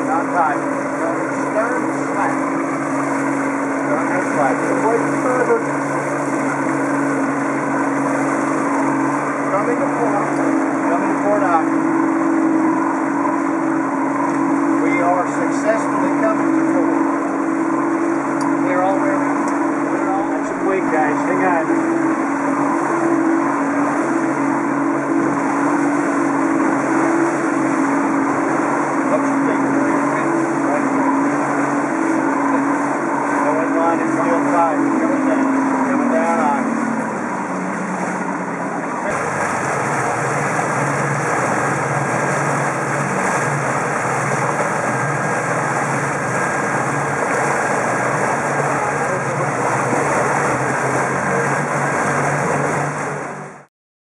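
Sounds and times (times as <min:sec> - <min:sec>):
boat wake hissing: 0:00.0 - 0:53.7
outboard motors running: 0:00.0 - 0:53.7
rushing water: 0:00.0 - 0:53.7
wind: 0:00.0 - 0:53.7.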